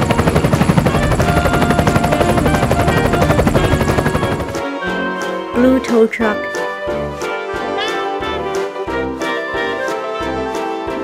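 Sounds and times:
helicopter rotor chopping: 0.0s - 5.1s
background music: 0.0s - 11.0s.

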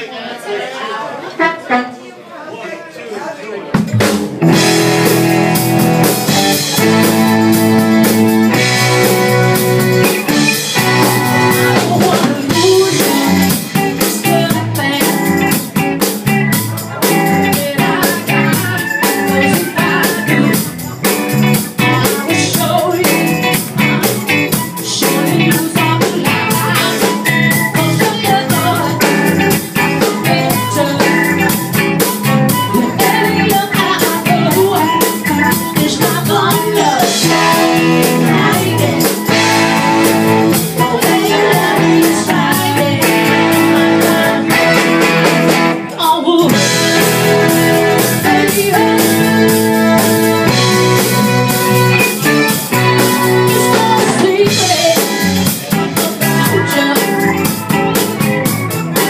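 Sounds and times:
soul band playing: 1.2s - 2.0s, 3.7s - 59.0s
steady drum beat: 3.8s - 59.0s.

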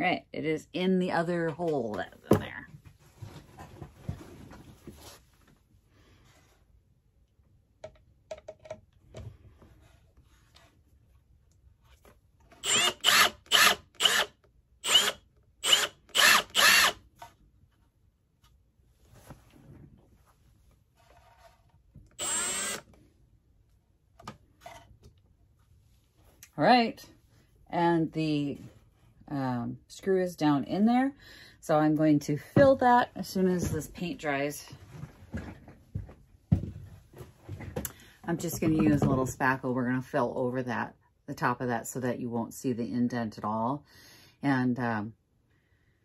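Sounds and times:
cordless drill driving screw: 12.6s - 17.0s, 22.2s - 22.9s.

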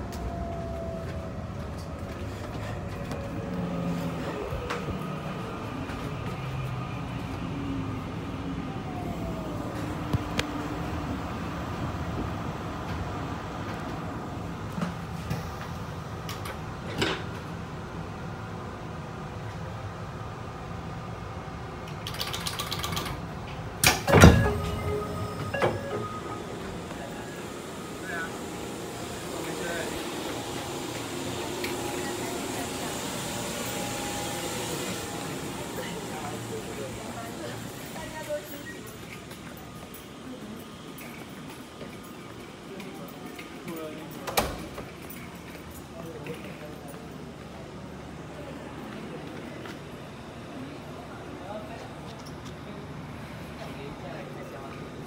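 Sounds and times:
train running and ventilation noise: 0.0s - 55.0s
train door clunk: 23.8s - 27.3s, 44.2s - 45.4s.

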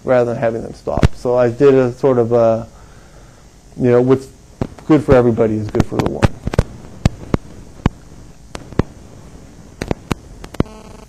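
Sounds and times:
low steady hum: 0.0s - 11.0s
sharp clicks: 5.7s - 9.0s, 9.8s - 10.8s.

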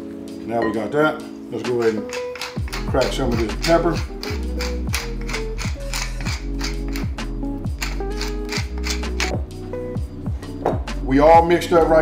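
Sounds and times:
background music with bass and beat: 0.2s - 12.0s
pepper mill grinding: 1.8s - 9.4s.

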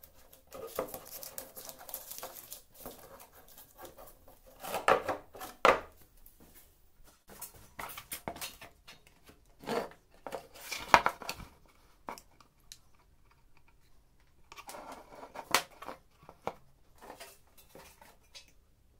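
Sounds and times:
plastic canister rustling and scraping: 0.0s - 5.6s.

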